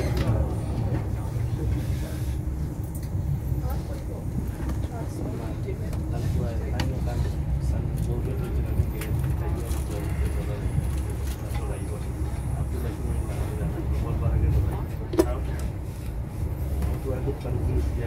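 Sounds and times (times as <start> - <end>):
train wheels rumbling on rail: 0.0 - 18.0.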